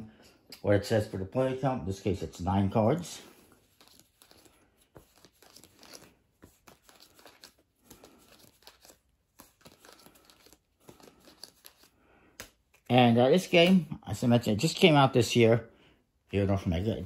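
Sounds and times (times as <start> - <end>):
playing cards dealt onto cloth: 3.6 - 12.9.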